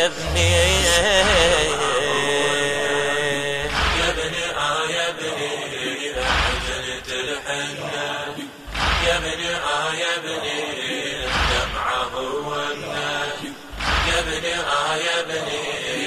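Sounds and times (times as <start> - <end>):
deep beat: 0.0 - 2.1, 3.5 - 4.4, 8.7 - 9.4, 13.7 - 14.4
men chanting lamentation: 0.0 - 16.0.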